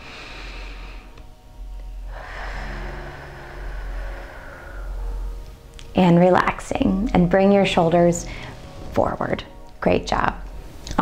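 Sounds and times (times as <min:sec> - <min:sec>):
woman breathing out deeply: 0:00.0 - 0:01.2, 0:01.9 - 0:05.8.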